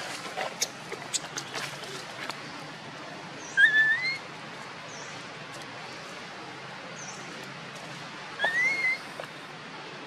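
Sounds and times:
baby monkey whistle-like cry: 3.6s - 4.2s, 8.4s - 9.0s.

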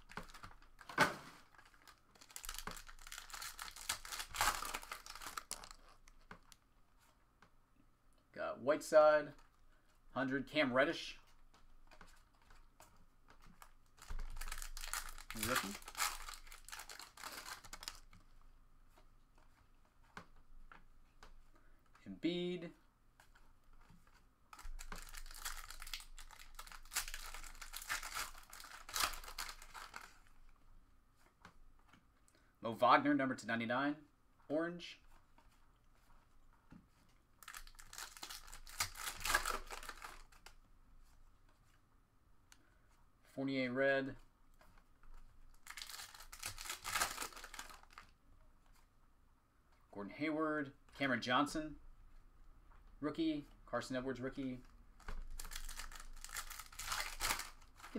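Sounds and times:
foil wrapper tearing and crinkling: 1.4s - 6.1s, 14.0s - 18.0s, 24.6s - 30.2s, 37.4s - 40.5s, 45.6s - 48.1s, 55.0s - 57.9s.

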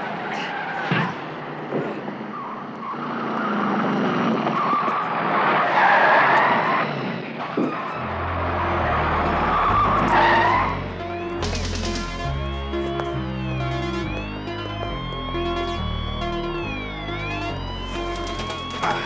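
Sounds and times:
car tyres squealing: 0.0s - 11.3s
synth bass score: 8.0s - 19.0s
sharp hit: 11.4s - 12.5s.

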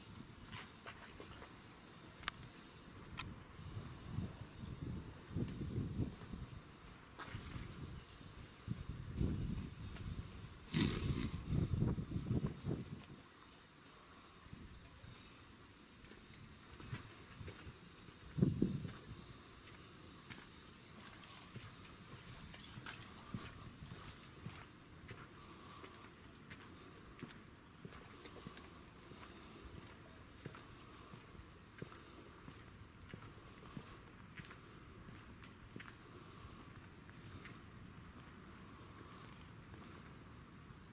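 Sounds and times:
footsteps on paved path: 0.1s - 13.2s, 15.1s - 40.9s
wind buffeting microphone: 3.0s - 13.2s, 18.3s - 19.3s.

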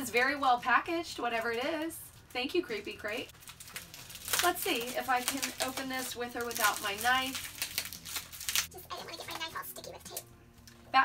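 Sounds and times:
woman's voice: 0.0s - 3.3s
packaging rustling: 1.2s - 8.8s.

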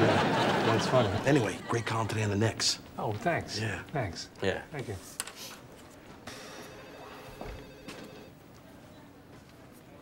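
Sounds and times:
telephone ringing faintly: 6.3s - 8.4s.

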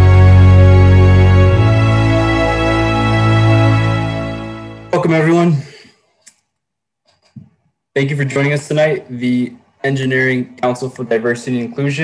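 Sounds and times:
man's voice: 4.9s - 5.9s.

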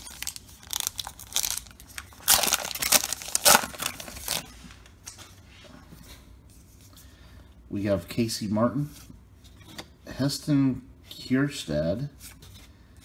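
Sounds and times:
wrapper tearing and crinkling: 0.0s - 4.5s
cards rustling: 0.0s - 4.9s.

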